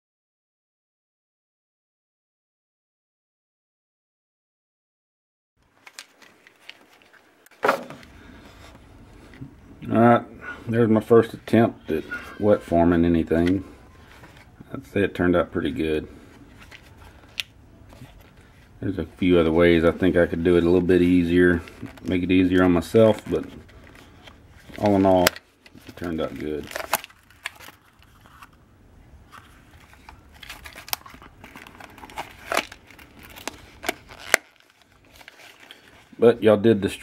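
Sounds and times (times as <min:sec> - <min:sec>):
handling leather pouch: 0:05.6 - 0:09.6, 0:16.1 - 0:28.6, 0:29.2 - 0:36.3.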